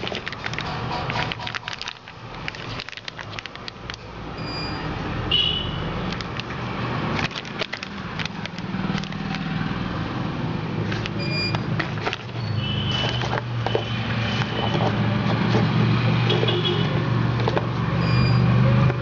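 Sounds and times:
plastic bag crinkling: 0:00.0 - 0:04.1, 0:06.1 - 0:09.9, 0:10.8 - 0:16.5.

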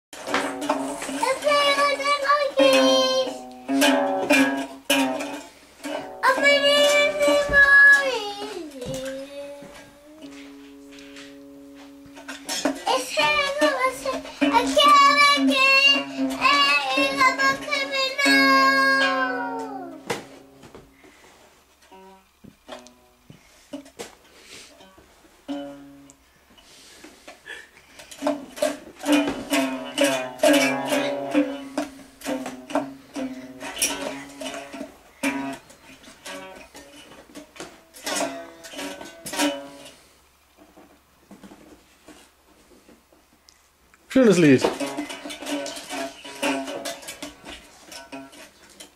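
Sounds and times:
toy guitar strummed and plucked: 0:00.2 - 0:20.8, 0:21.8 - 0:24.2, 0:24.8 - 0:26.2, 0:27.9 - 0:41.0, 0:44.2 - 0:48.9
child singing: 0:01.0 - 0:03.8, 0:06.1 - 0:10.4, 0:12.8 - 0:20.0.

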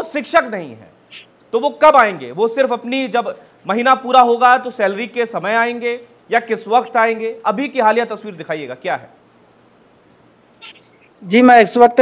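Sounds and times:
faint steady hiss: 0:00.0 - 0:11.9.

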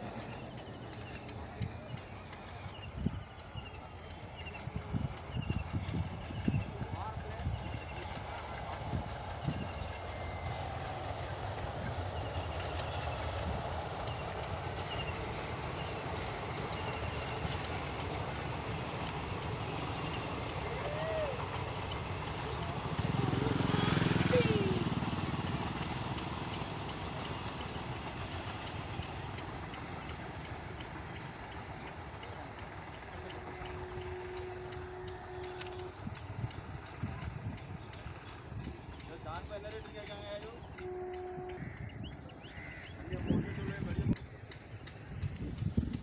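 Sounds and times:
train wheels clattering over rails: 0:00.0 - 0:46.0
vehicle engine passing: 0:22.8 - 0:25.5.

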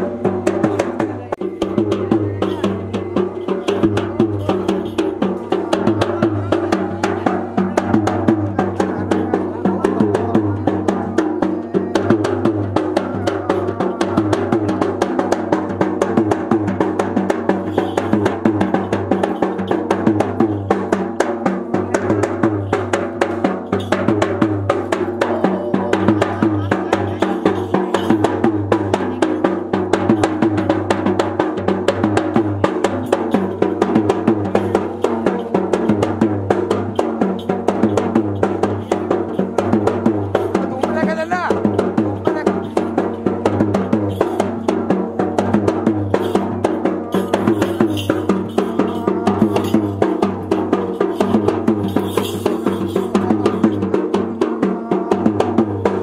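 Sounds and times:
fast drumming: 0:00.0 - 0:56.0
wavering melody: 0:22.4 - 0:30.9, 0:32.4 - 0:55.4.

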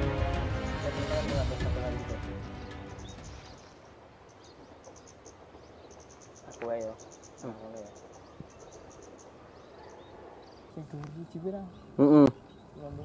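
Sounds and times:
insects chirping: 0:00.0 - 0:13.0.

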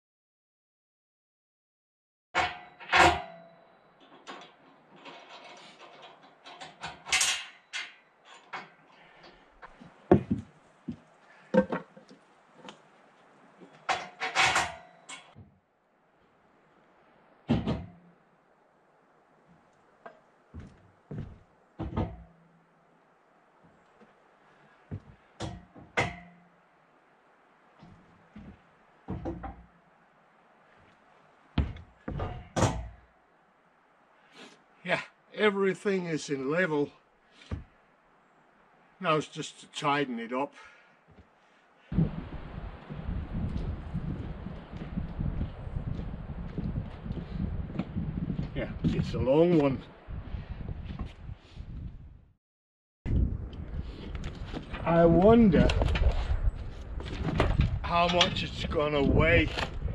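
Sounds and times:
metal clanks and knocks: 0:02.4 - 0:09.4, 0:11.5 - 0:12.7, 0:13.8 - 0:15.5, 0:21.2 - 0:22.5, 0:25.0 - 0:26.5, 0:27.8 - 0:29.7, 0:31.6 - 0:33.0.

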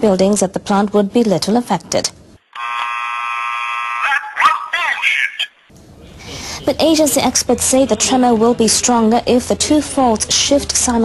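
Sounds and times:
electronic buzzer tone: 0:02.5 - 0:04.2.

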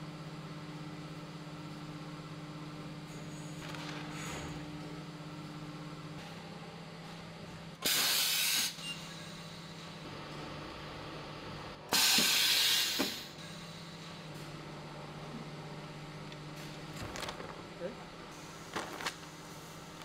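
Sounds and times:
low machine hum: 0:00.0 - 0:07.9, 0:08.7 - 0:20.0
compressed air hissing: 0:07.9 - 0:08.8, 0:11.9 - 0:13.4.

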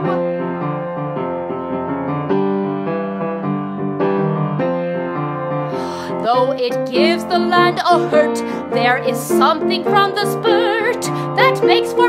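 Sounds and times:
piano playing chords and melody: 0:00.0 - 0:12.0.

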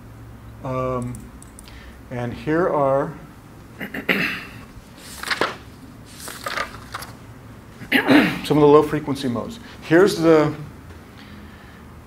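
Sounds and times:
man coughing: 0:03.8 - 0:04.6, 0:07.8 - 0:08.6.

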